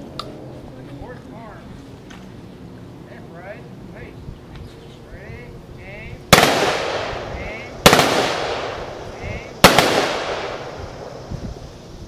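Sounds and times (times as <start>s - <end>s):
rifle volleys with echo: 6.3s - 11.1s.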